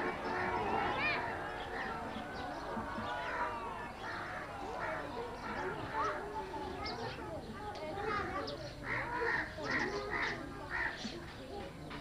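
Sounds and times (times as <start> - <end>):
distant voices: 0.0 - 12.0
crows cawing: 8.1 - 11.0.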